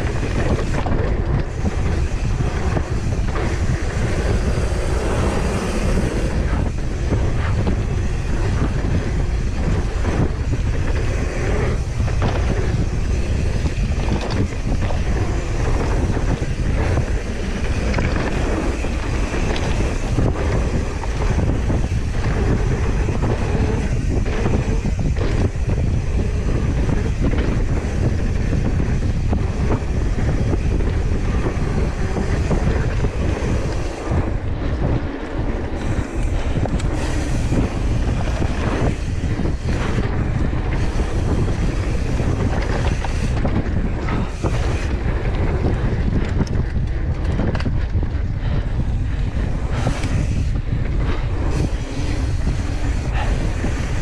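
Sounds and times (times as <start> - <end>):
bike knocking and rattling: 0.0 - 54.0
tyres rushing on dirt trail: 0.0 - 54.0
wind buffeting microphone: 0.0 - 54.0.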